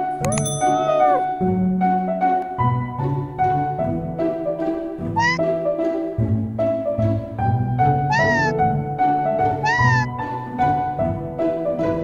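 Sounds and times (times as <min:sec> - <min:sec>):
background music with sustained notes: 0:00.0 - 0:12.0
robot pet squeaky calls: 0:00.6 - 0:01.3, 0:05.2 - 0:05.4, 0:08.1 - 0:08.6, 0:09.6 - 0:10.1.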